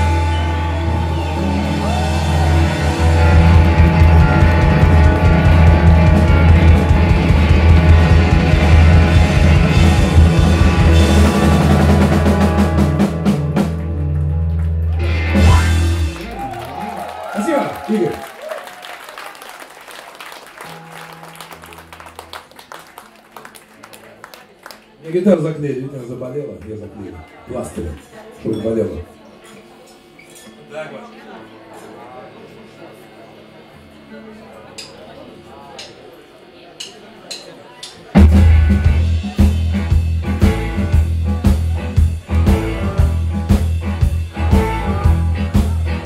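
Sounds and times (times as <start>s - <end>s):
audience applause: 0.0s - 10.3s, 13.6s - 25.6s
live rock band playing: 0.0s - 18.3s, 20.5s - 24.0s, 37.8s - 46.0s.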